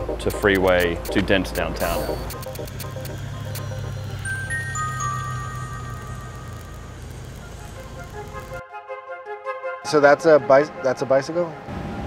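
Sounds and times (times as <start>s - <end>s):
high held notes: 0.1s - 8.6s
low sustained drone: 1.8s - 8.6s.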